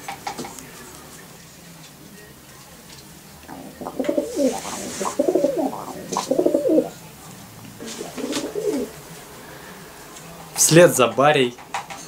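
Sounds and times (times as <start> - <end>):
pigeon cooing: 3.5 - 7.1, 7.8 - 9.1.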